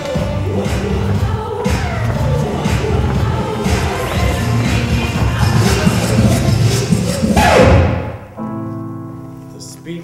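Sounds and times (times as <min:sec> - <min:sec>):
live band party music: 0:02.4 - 0:08.2.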